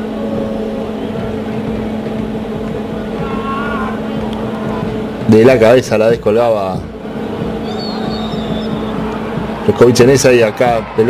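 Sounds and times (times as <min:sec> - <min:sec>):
low hum: 0:00.0 - 0:10.2
referee's whistle: 0:07.6 - 0:09.0.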